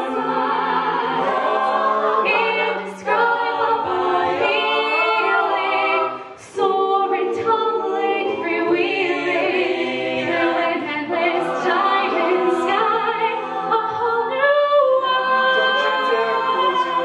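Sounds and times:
a cappella group singing chords: 0.0s - 17.0s.

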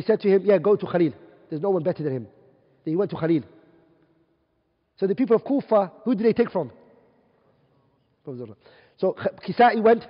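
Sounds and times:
man speaking: 0.0s - 3.6s, 5.0s - 6.8s, 8.2s - 10.0s.

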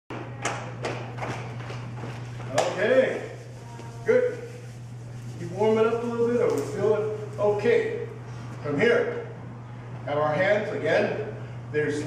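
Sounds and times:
steady low hum: 0.1s - 12.0s.

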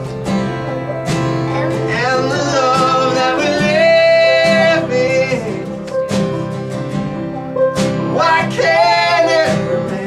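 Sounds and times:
strummed acoustic guitar: 0.0s - 10.0s.

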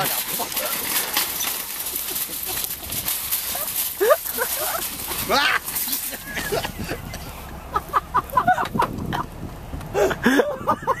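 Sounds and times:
metal shopping cart rattling: 0.0s - 7.0s
rising yelp: 0.0s - 8.9s
people laughing: 1.7s - 9.3s, 9.9s - 11.0s.

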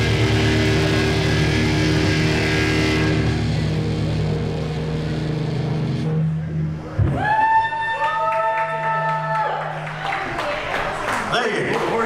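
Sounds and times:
distorted electric guitars and bass: 0.0s - 7.8s.

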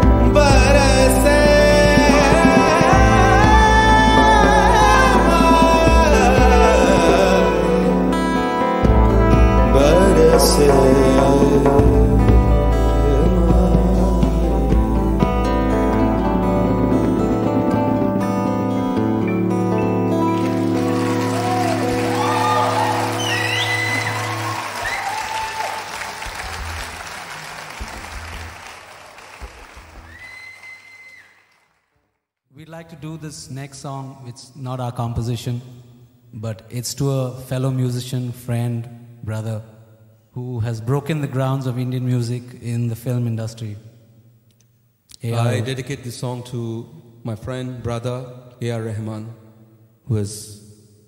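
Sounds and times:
acoustic guitar playing: 0.0s - 24.8s
audience applause: 20.1s - 31.9s.

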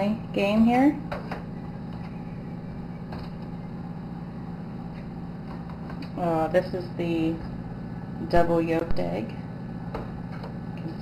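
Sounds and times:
incubator fan humming: 0.0s - 11.0s.

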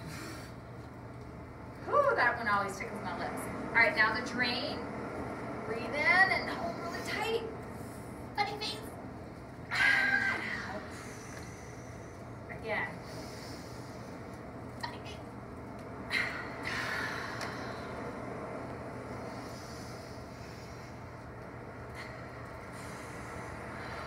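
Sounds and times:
long noisy exhale: 0.0s - 0.7s, 9.7s - 12.4s, 13.0s - 14.2s, 16.1s - 18.2s, 19.1s - 21.2s, 21.9s - 24.0s.

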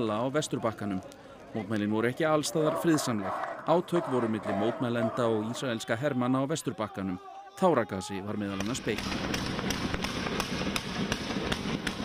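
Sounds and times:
rapid sharp bangs: 8.6s - 12.0s.

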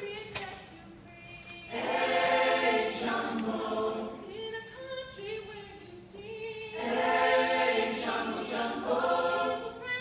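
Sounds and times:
choir singing a cappella: 1.6s - 10.0s.

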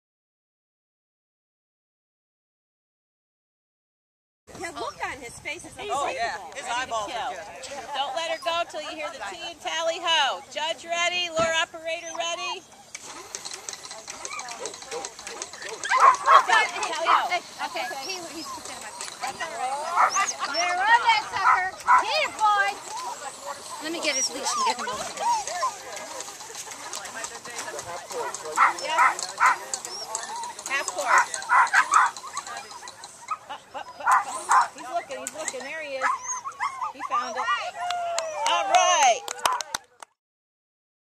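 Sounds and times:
lure machine clicking whir: 12.9s - 33.4s
dog barking: 14.2s - 17.4s, 19.9s - 20.5s, 21.4s - 22.2s, 28.2s - 34.7s.

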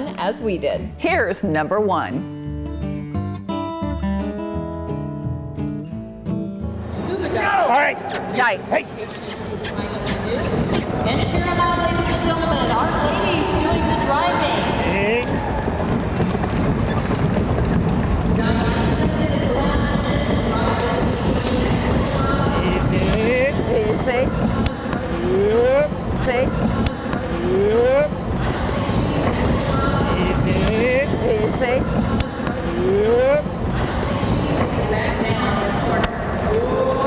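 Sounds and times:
horse hoofbeats on dirt: 8.1s - 37.0s
wagon rolling: 8.4s - 37.0s.

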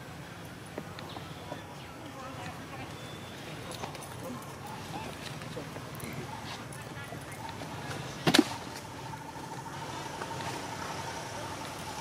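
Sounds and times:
background chatter of voices: 0.0s - 12.0s
low murmur: 0.0s - 12.0s.

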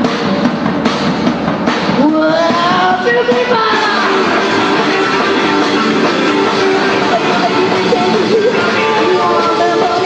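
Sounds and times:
drum fill: 0.0s - 10.0s
rock and roll band: 0.0s - 10.0s.

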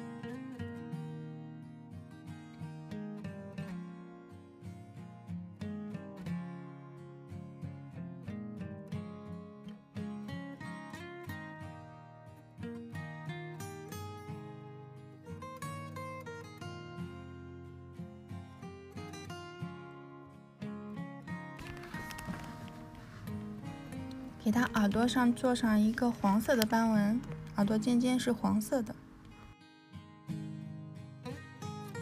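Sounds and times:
acoustic guitar melody: 0.0s - 32.0s.

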